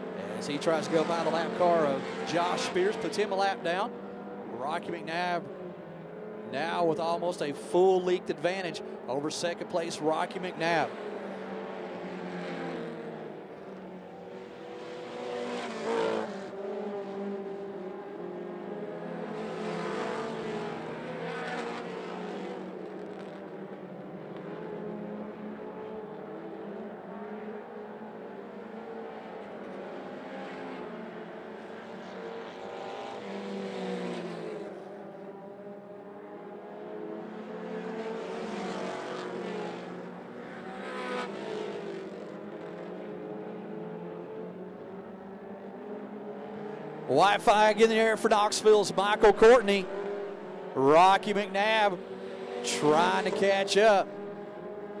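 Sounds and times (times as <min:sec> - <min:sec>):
race car engines passing: 0:00.0 - 0:55.0.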